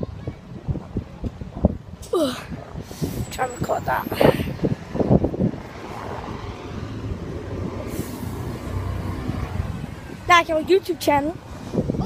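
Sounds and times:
motor vehicle passing: 3.9 - 12.0.

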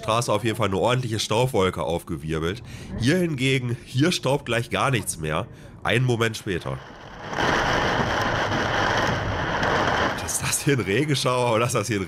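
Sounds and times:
heavy rain on car roof: 6.8 - 11.7.

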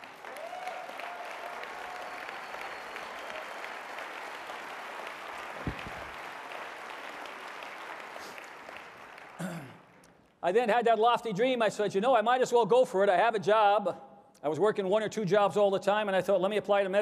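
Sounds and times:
audience applauding: 0.0 - 10.0
brief low thump: 5.6 - 6.1.

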